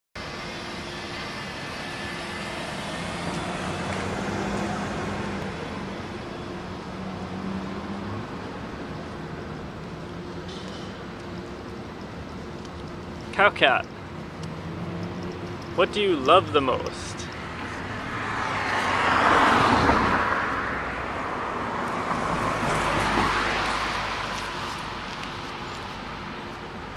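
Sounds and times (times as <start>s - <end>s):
cars passing: 0.2s - 26.9s
street traffic noise: 0.2s - 26.9s.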